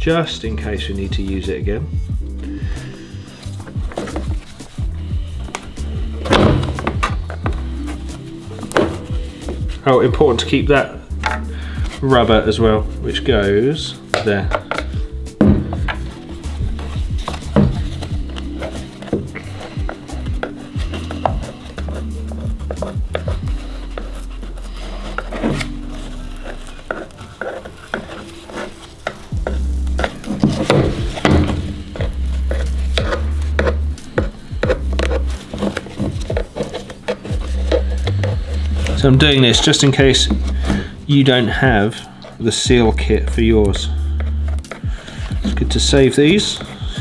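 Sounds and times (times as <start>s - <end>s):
background music with pulsing bass: 0.0s - 27.0s, 29.3s - 41.9s
screwdriver scraping on plastic: 14.1s - 41.4s.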